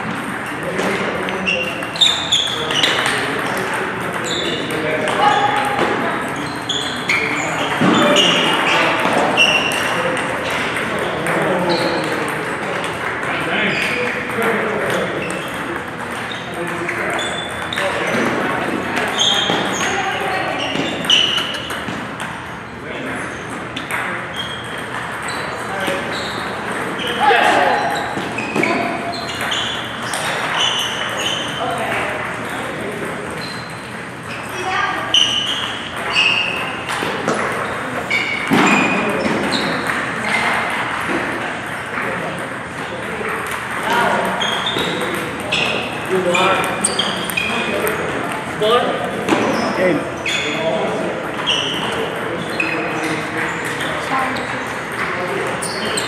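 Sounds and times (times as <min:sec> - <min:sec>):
table tennis balls ticking: 0:00.0 - 0:56.0.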